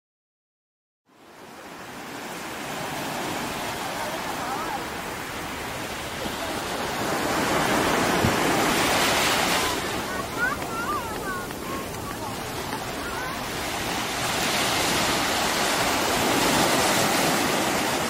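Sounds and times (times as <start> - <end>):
waves breaking on beach: 1.1 - 18.0.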